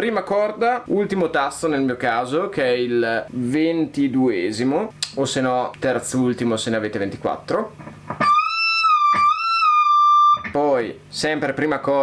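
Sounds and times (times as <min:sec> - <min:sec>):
electric guitar high note: 0:08.2 - 0:10.6.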